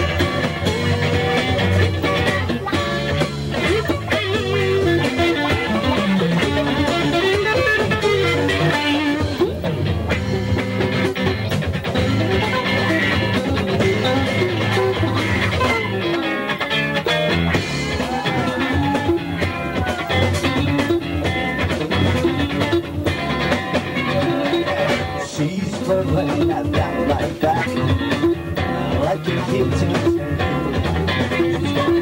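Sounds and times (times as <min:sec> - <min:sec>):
bass and drums: 0:00.0 - 0:32.0
electric guitar bending notes: 0:00.0 - 0:32.0.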